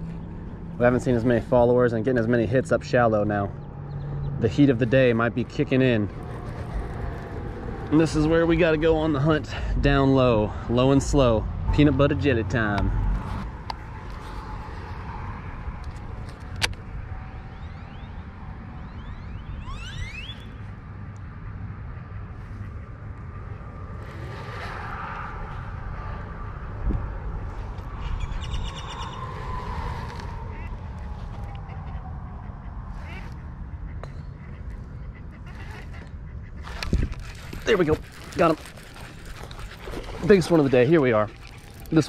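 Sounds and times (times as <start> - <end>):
wind rumbling on microphone: 0.0 - 42.0
bird calls: 17.2 - 20.7, 27.9 - 42.0.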